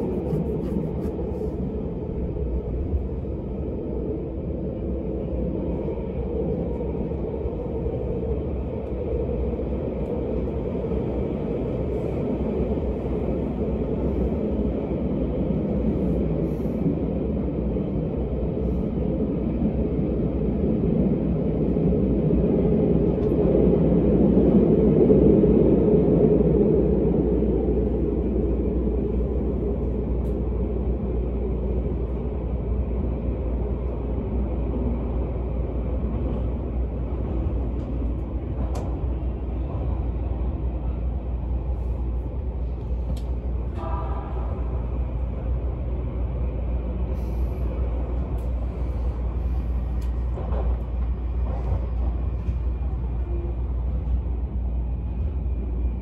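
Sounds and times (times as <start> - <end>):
train rumbling through tunnel: 0.0 - 56.0.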